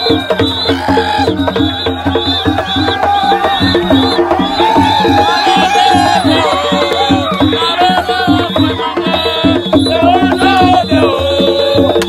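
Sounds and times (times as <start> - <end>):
music with fast percussion beat: 0.0 - 12.0.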